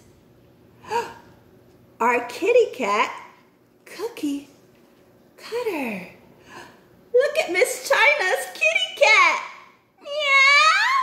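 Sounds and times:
woman gasping: 0.8s - 1.3s.

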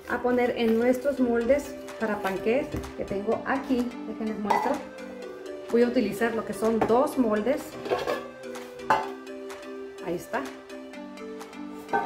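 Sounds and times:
background music with held notes: 0.0s - 12.0s
metal pan clanking on stone: 7.8s - 9.2s.

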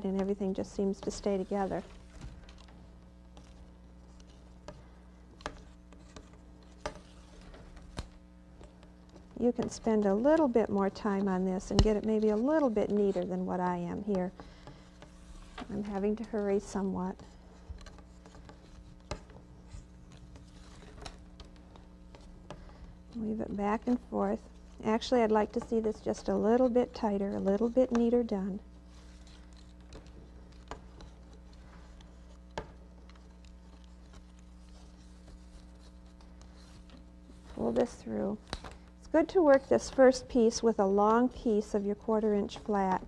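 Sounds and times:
steady low hum: 0.0s - 43.0s.

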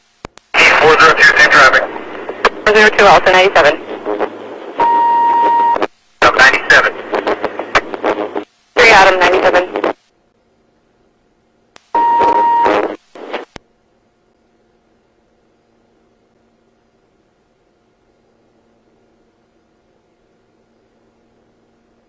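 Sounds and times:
radio voice: 0.6s - 2.0s, 6.2s - 7.3s
radio beep: 4.8s - 6.9s, 12.0s - 12.9s.

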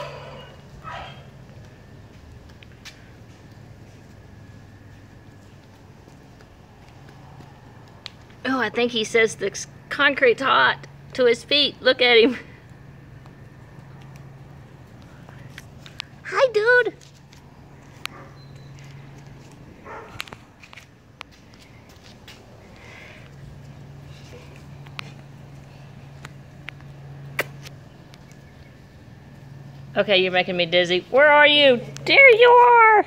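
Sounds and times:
low steady hum: 0.0s - 33.0s
puppy paws on concrete: 0.0s - 33.0s
bare footsteps on concrete: 0.6s - 9.4s, 16.9s - 29.9s.

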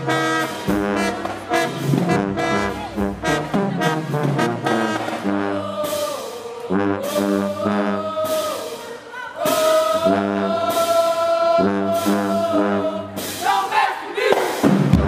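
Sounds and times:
marching band brass playing: 0.0s - 15.0s
drum hits: 14.3s - 15.0s.

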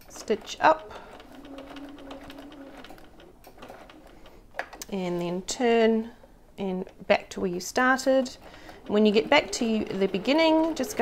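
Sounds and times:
sewing machine humming: 0.0s - 4.9s, 7.8s - 11.0s.

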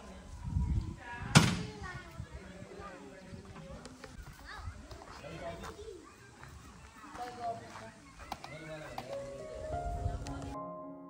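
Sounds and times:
distant people talking: 0.0s - 10.6s.

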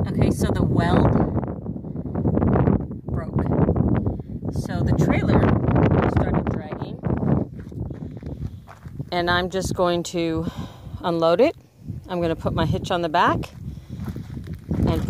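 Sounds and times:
wind buffeting microphone: 0.0s - 15.0s
footsteps crunching on gravel: 7.3s - 9.4s, 13.4s - 15.0s.

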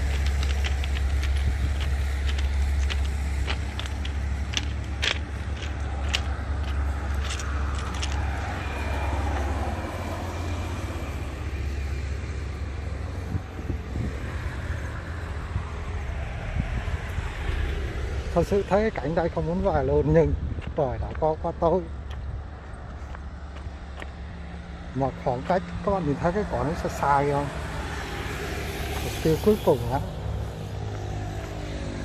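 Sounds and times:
low traffic rumble: 0.0s - 32.0s
vehicle passing: 0.0s - 32.0s.

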